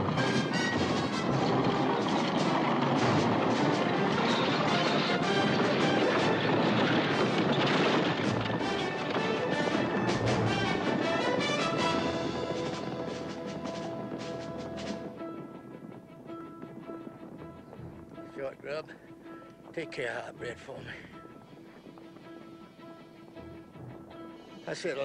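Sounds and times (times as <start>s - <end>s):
horses stampeding: 0.0s - 25.0s
orchestral film music: 0.0s - 25.0s.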